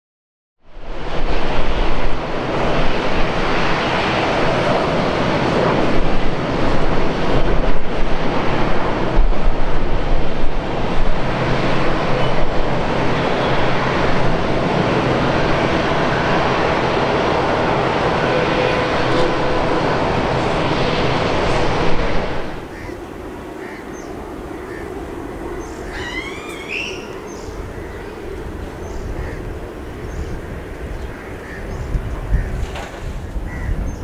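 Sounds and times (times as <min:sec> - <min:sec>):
jet engines roaring: 0:00.7 - 0:34.0.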